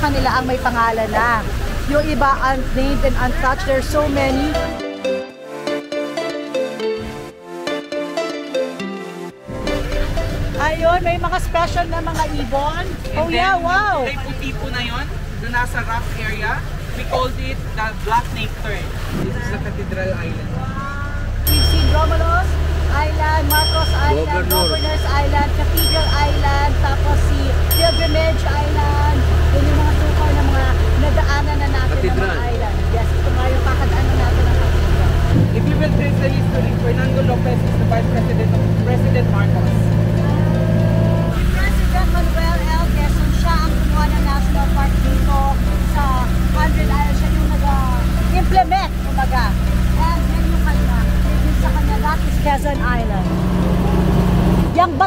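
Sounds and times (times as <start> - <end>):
people talking: 0.0 - 4.7, 10.5 - 55.0
boat engine humming: 0.0 - 55.0.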